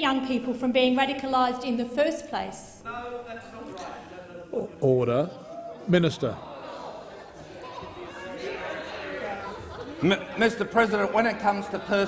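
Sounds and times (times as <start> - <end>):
indistinct chatter of voices: 2.3 - 12.0.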